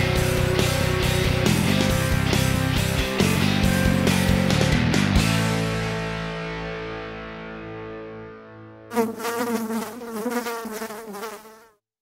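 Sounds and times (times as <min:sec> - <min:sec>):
insect buzzing: 0:08.9 - 0:11.8.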